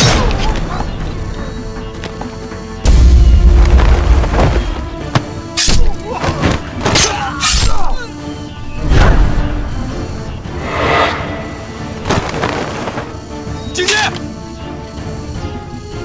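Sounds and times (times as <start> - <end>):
dramatic film score music: 0.0 - 16.0.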